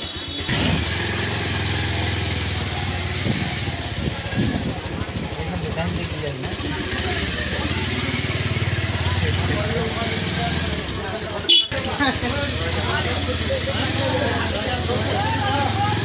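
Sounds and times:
faint background voices: 0:02.5 - 0:16.0.

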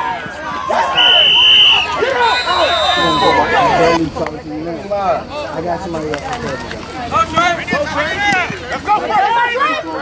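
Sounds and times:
spectators shouting: 0:00.0 - 0:04.1, 0:06.4 - 0:10.0
referee whistle blasts: 0:00.8 - 0:03.6.

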